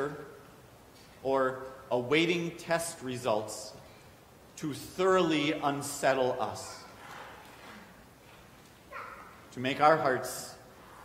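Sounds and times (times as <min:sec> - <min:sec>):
man speaking: 0:00.0 - 0:00.4, 0:01.2 - 0:03.8, 0:04.6 - 0:07.0, 0:09.5 - 0:10.7
soft breath: 0:10.7 - 0:11.0.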